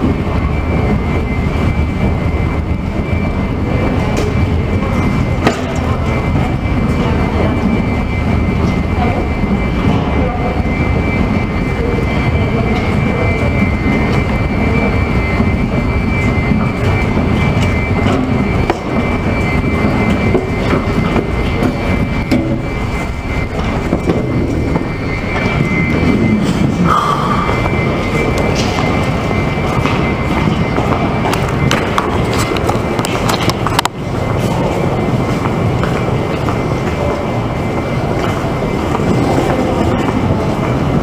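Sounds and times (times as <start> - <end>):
escalator mechanical rumble: 0.0 - 41.0
high-pitched whine: 0.0 - 41.0.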